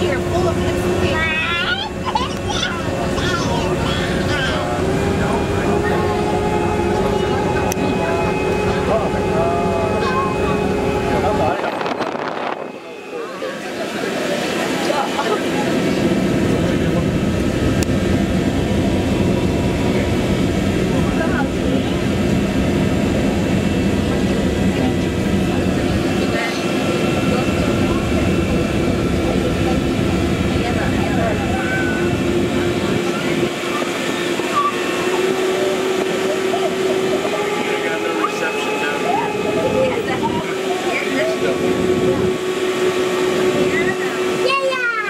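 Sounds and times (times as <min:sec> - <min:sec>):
held hum tones: 0:00.0 - 0:44.9
machinery rumble: 0:00.0 - 0:45.0.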